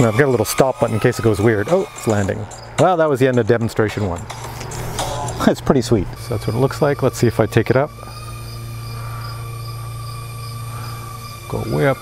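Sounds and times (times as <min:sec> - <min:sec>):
quadcopter motors whining: 0:00.0 - 0:02.7, 0:06.0 - 0:12.0
faint high chirp: 0:06.2 - 0:12.0.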